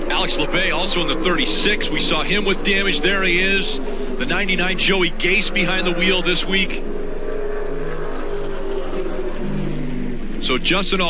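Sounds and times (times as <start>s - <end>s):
race car engines droning: 0.0s - 11.0s.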